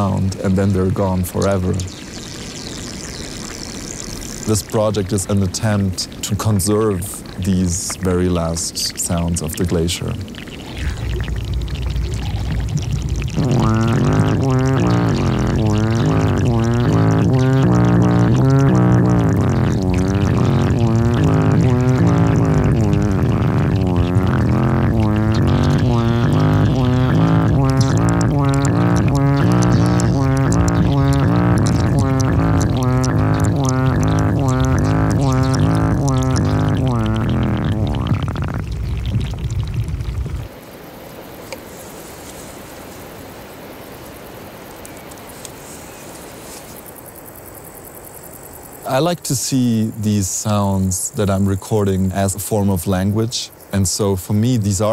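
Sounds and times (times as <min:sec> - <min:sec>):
underwater meltwater gurgling: 0:00.0 - 0:41.6, 0:46.8 - 0:54.9
low drone: 0:09.2 - 0:38.4.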